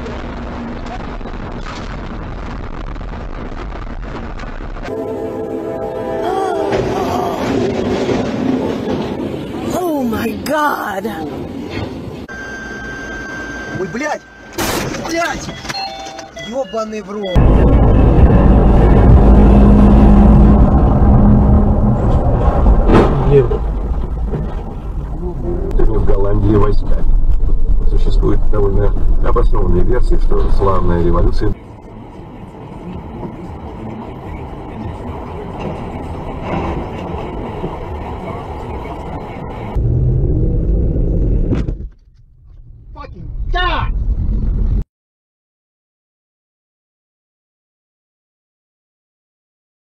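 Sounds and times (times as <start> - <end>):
low road rumble inside car: 0.0 - 4.9, 17.4 - 44.8
windshield crash: 22.1 - 24.9
truck trailer slamming into pole: 22.8 - 23.4.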